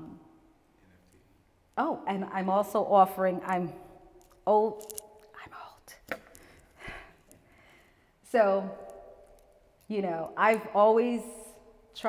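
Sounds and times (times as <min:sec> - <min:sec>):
person whispering: 0:05.3 - 0:06.1.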